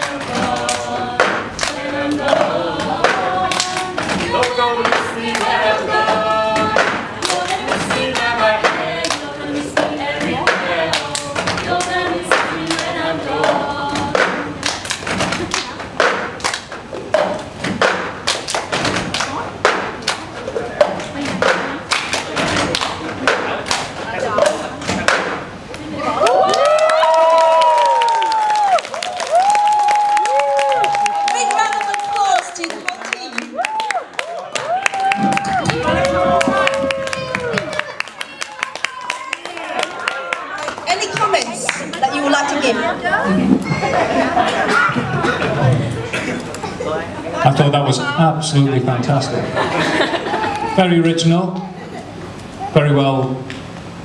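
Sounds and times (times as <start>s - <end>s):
hand claps: 0.0s - 6.1s, 6.7s - 9.9s, 10.5s - 25.8s, 26.5s - 42.0s
group singing: 0.0s - 19.0s.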